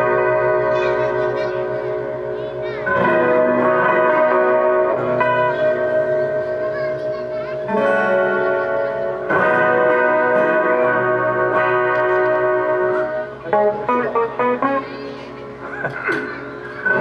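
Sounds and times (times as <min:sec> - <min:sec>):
acoustic guitars strumming: 0:00.0 - 0:17.0.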